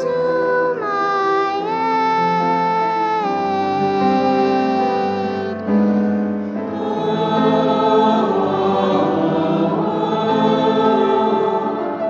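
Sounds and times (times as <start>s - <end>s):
church choir singing: 0.0s - 1.9s, 3.1s - 12.0s.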